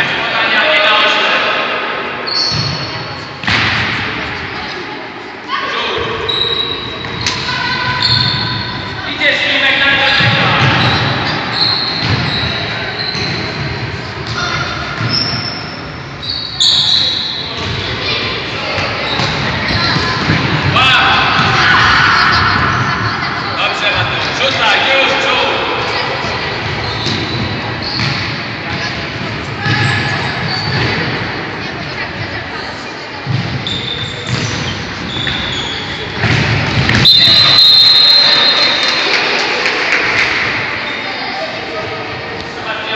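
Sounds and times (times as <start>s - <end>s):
sports hall din: 0.0s - 42.9s
shoe squeaks: 2.2s - 3.3s, 6.2s - 9.0s, 10.0s - 13.7s, 14.4s - 17.8s, 26.7s - 28.2s, 29.8s - 31.0s, 33.6s - 36.2s
referee whistle blast: 37.0s - 38.8s.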